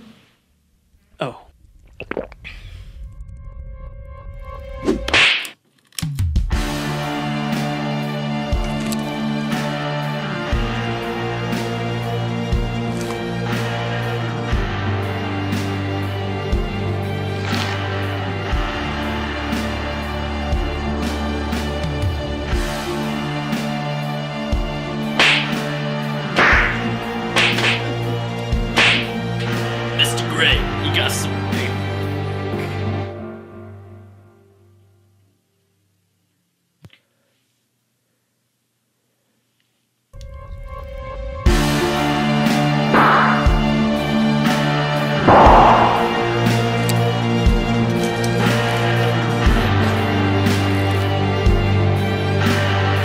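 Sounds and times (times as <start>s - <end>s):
open-hand slaps on skin: 5.1s - 5.6s, 25.2s - 25.6s, 26.4s - 26.8s, 27.4s - 27.9s, 28.8s - 29.1s
low droning music: 6.6s - 34.4s, 40.2s - 53.0s
sharp swish sound effect: 25.2s - 25.6s, 43.0s - 44.0s, 45.2s - 47.1s
background music with bass: 41.5s - 53.0s.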